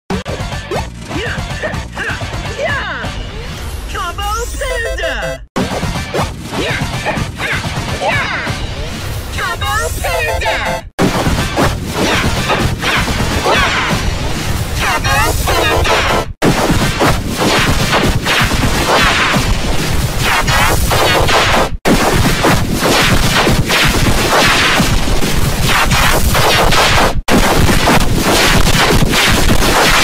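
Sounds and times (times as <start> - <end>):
distorted cartoon intro music: 0.1 - 30.0
whoosh and swoop effects: 10.0 - 30.0.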